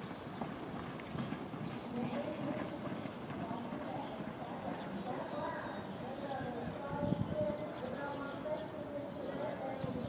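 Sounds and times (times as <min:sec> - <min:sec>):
horses galloping on dirt: 0:00.0 - 0:10.0.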